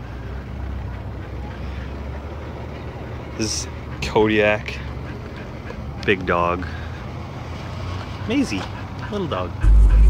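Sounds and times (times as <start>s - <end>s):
passing vehicles rumble: 0.0s - 10.0s.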